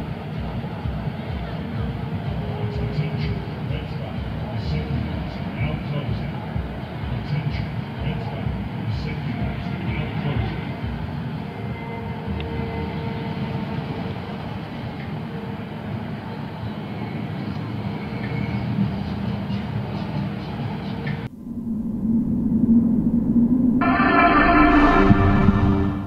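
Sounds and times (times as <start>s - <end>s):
distant funfair rumble: 0.0s - 26.0s
low music tone: 21.2s - 26.0s.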